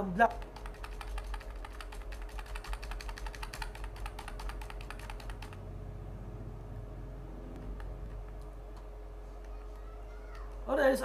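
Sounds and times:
computer keys tapping: 0:00.2 - 0:05.6, 0:07.5 - 0:09.6.

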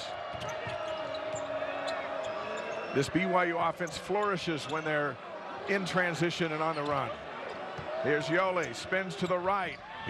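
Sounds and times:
indoor crowd noise: 0:00.0 - 0:10.0.

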